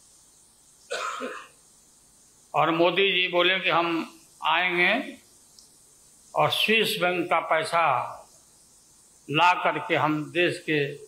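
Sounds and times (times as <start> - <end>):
man clearing throat: 0.9 - 1.5.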